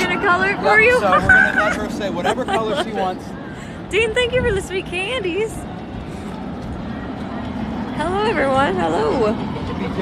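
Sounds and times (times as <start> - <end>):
distant crowd voices: 0.0 - 10.0.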